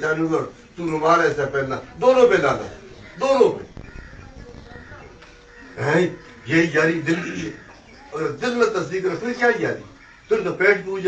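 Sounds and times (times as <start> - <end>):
man talking loudly: 0.0 - 3.7
low room noise: 0.0 - 11.0.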